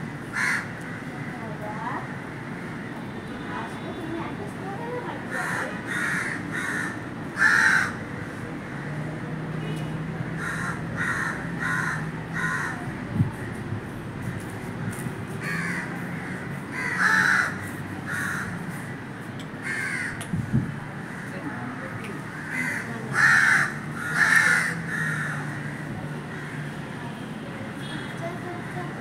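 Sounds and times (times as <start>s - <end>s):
crows cawing: 0.1s - 2.9s, 5.3s - 8.9s, 10.4s - 13.5s, 15.4s - 19.0s, 19.6s - 20.2s, 21.0s - 26.8s.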